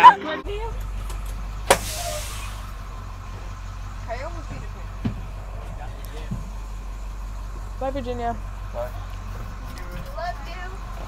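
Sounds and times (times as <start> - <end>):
bus engine low rumble: 0.0 - 11.0.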